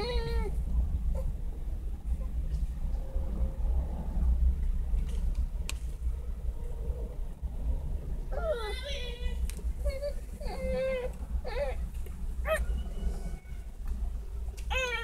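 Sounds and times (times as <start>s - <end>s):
child whining: 0.0s - 0.5s, 8.3s - 11.8s, 14.7s - 15.0s
low rumble inside car: 0.0s - 15.0s.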